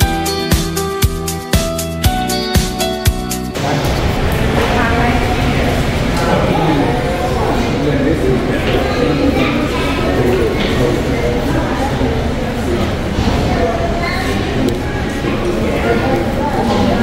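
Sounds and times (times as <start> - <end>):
people talking indistinctly: 3.2 - 17.0.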